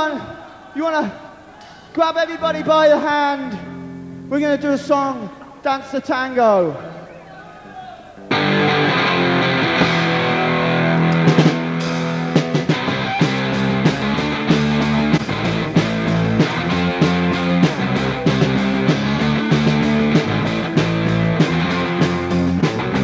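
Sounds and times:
live punk rock band: 8.3 - 23.0
steady drum beat: 9.5 - 23.0.

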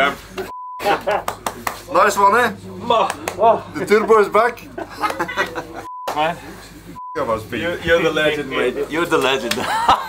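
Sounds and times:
men laughing: 0.8 - 1.6, 3.4 - 6.8, 9.4 - 10.0.

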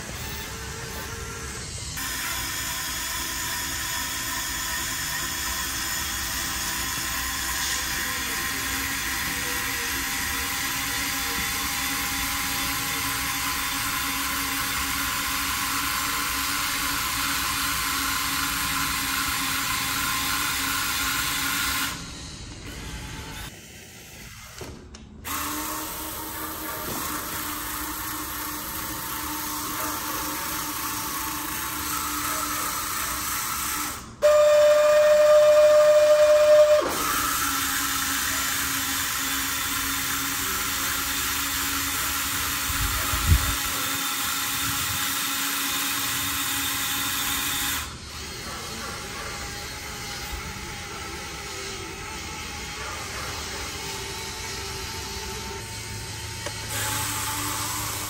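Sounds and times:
electric gear motors whining: 0.0 - 58.0
high-pitched motor whine: 0.0 - 58.0.

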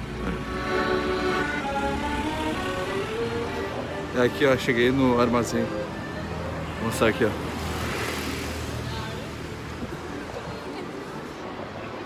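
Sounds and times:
accordion melody: 0.0 - 7.6.

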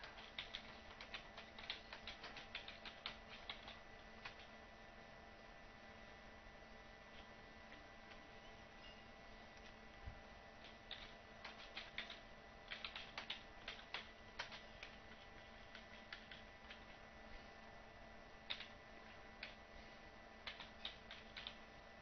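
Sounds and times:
keyboard typing: 0.0 - 4.5, 10.6 - 17.0, 18.4 - 19.6, 20.4 - 21.6.

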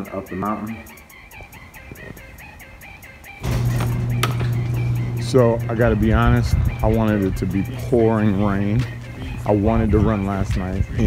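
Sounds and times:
background music with ticking beat: 0.0 - 11.0
low hum with rushing noise: 3.4 - 9.8.

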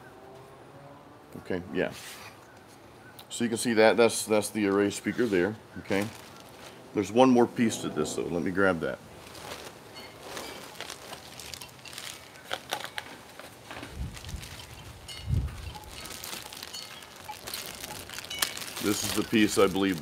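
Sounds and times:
plastic bag crinkling: 5.8 - 6.8, 9.2 - 20.0
low thumps: 6.8 - 9.8.

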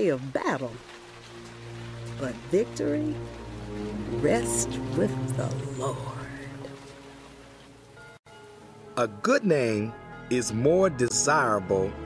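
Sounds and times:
soft background music pad: 0.7 - 12.0.

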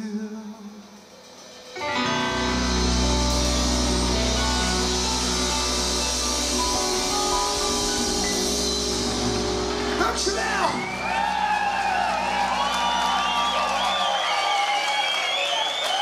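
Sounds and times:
guitar and organ chord ringing: 1.8 - 16.0
audience cheering and clapping: 3.4 - 16.0.

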